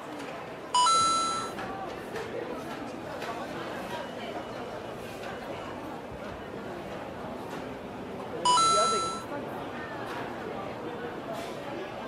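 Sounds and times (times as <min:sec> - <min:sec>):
murmur of voices: 0:00.0 - 0:12.0
two-note electronic chime: 0:08.5 - 0:09.2.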